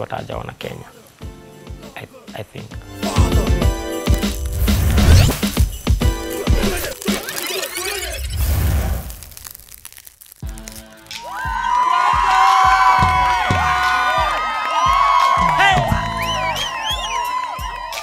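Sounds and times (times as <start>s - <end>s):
live band playing: 2.8s - 7.4s.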